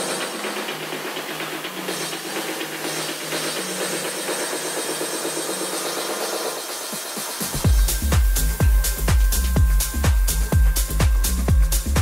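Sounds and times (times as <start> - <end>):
electronic dance music synth notes: 0.0 - 12.0.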